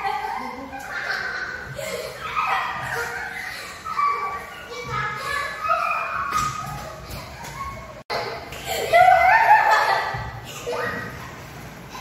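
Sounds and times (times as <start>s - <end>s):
girls talking and calling out: 0.0s - 11.2s.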